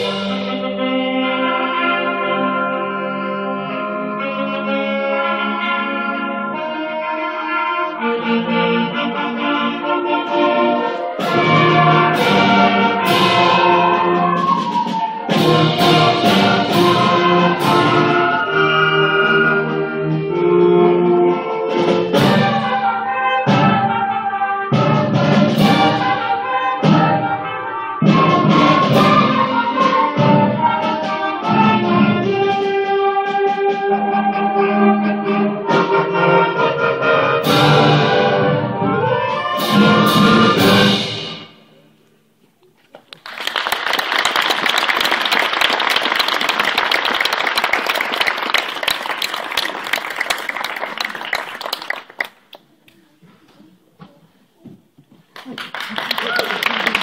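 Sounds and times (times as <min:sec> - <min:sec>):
concert band playing: 0:00.0 - 0:41.9
audience applause: 0:43.0 - 0:52.7, 0:55.3 - 0:57.0.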